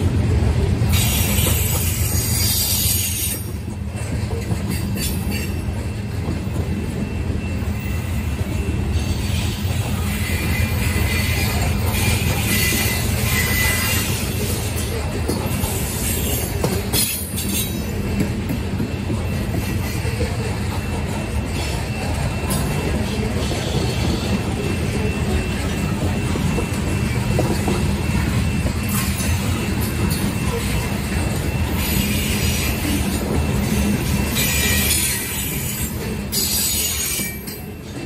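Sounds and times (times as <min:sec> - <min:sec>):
train wheels rumbling on rail: 0:00.0 - 0:38.0
high wheel squeal: 0:00.9 - 0:03.6, 0:06.8 - 0:38.0.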